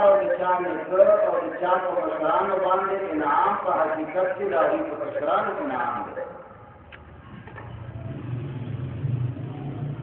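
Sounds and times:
low engine hum: 6.8s - 10.0s.

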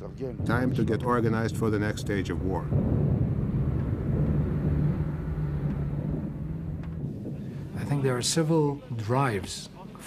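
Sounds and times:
tank engine rumbling: 1.8s - 8.1s.

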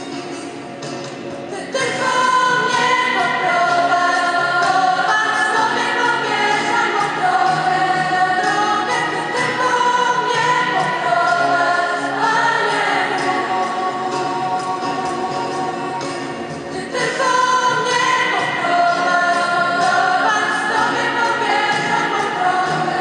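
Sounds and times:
choir singing held notes: 1.5s - 23.0s.

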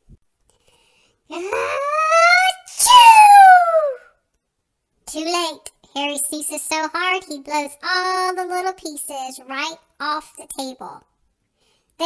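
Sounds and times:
person sneezing in a high voice: 1.3s - 4.1s.

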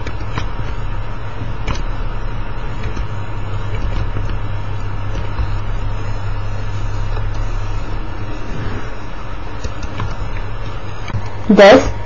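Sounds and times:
low rumble with hiss: 0.0s - 12.0s.

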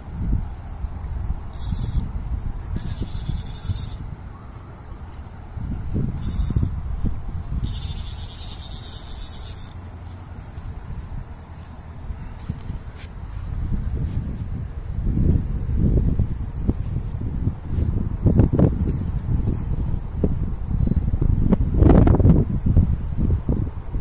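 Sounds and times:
wind buffeting microphone: 0.0s - 24.0s
fishing line running off reel: 1.5s - 2.1s, 2.7s - 4.1s, 6.1s - 6.8s, 7.5s - 10.2s.

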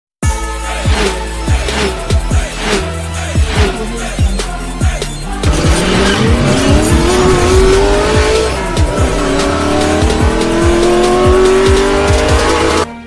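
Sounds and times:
electronic music with beat: 0.2s - 13.0s
racing car engine revving: 0.8s - 12.9s.

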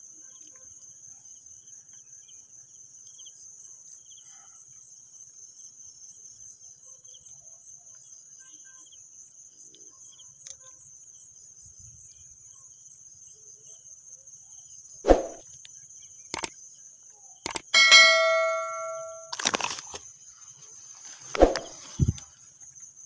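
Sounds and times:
crickets chirring: 0.0s - 23.0s
sharp clicks: 17.5s - 18.4s
bell-like ding: 17.8s - 19.4s.

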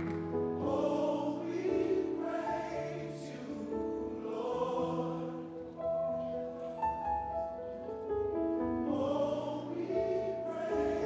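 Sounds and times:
gospel choir singing: 0.0s - 7.2s, 8.6s - 11.0s.

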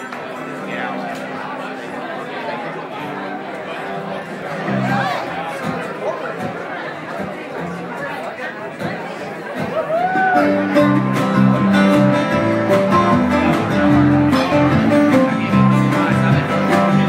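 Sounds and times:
crowd chatter: 0.0s - 17.0s
band instruments low held notes: 8.8s - 17.0s.

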